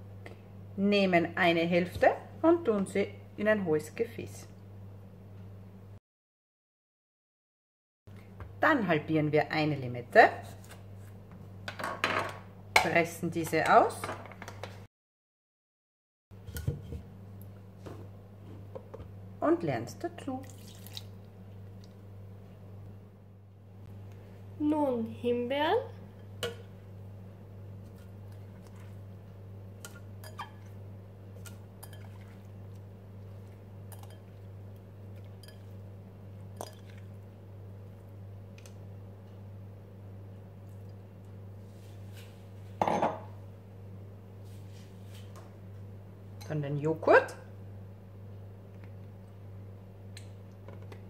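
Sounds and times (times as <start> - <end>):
low steady hum: 0.0 - 6.0, 16.4 - 51.0.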